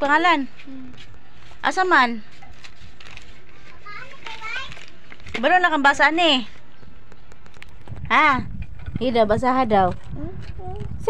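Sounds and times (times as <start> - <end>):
faint children's voices: 3.4 - 4.9, 10.1 - 11.0.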